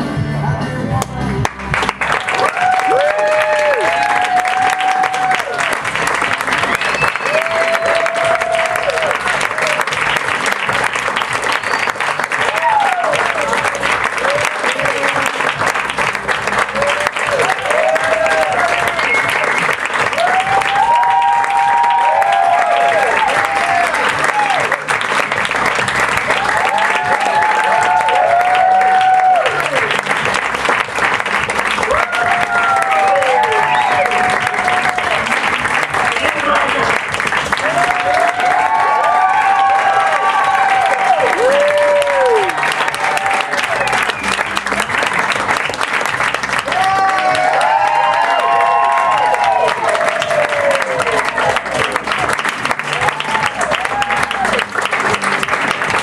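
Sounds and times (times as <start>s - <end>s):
audience applauding: 1.4s - 56.0s
cheers and whoops: 2.1s - 10.2s, 11.5s - 15.3s, 16.6s - 24.9s, 26.2s - 30.0s, 31.7s - 36.9s, 37.5s - 45.0s, 46.5s - 56.0s.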